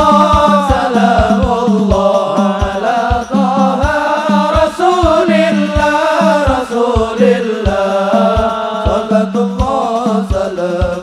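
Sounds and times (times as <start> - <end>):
amplified devotional singing: 0.0 - 11.0
deep drum beating: 0.0 - 11.0.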